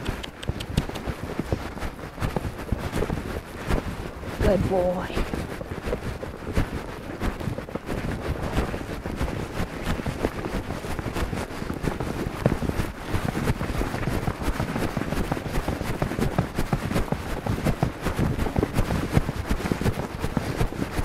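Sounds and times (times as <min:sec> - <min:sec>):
horse hoofbeats on wet grass: 0:00.0 - 0:21.0
wind buffeting microphone: 0:00.0 - 0:21.0.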